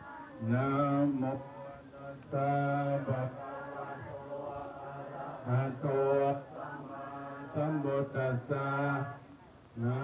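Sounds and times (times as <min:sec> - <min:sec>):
man chanting into a microphone: 0:00.4 - 0:04.2, 0:05.4 - 0:10.0.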